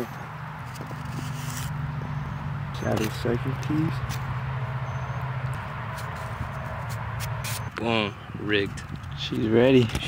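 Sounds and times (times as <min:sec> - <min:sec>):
faint clicks and scrapes of handling: 0:00.6 - 0:01.7.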